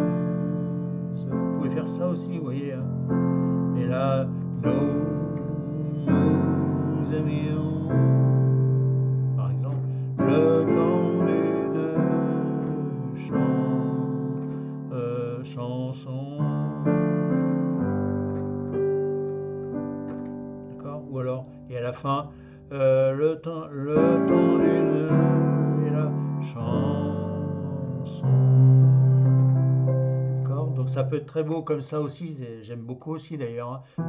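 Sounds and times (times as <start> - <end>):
digital piano slow chords: 0.0 - 31.9.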